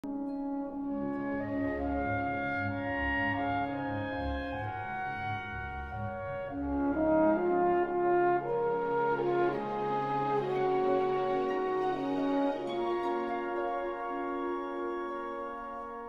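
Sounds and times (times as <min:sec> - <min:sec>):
orchestral classical music: 0:00.0 - 0:16.0.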